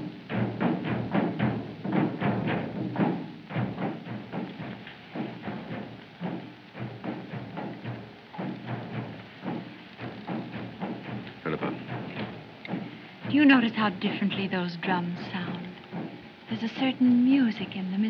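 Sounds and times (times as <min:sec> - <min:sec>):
drums beating a steady rhythm: 0:00.0 - 0:18.0.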